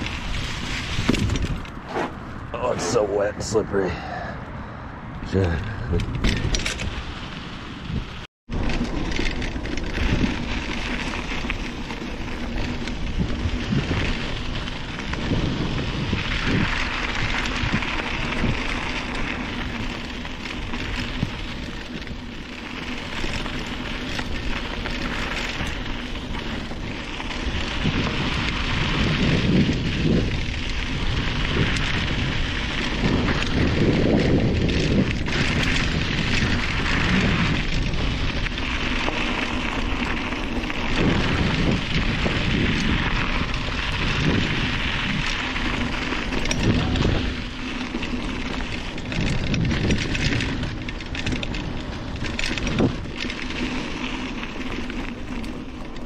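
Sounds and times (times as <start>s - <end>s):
bike tyres rolling over dirt: 0.0s - 4.3s, 5.2s - 56.0s
wind rumbling on microphone: 0.0s - 56.0s.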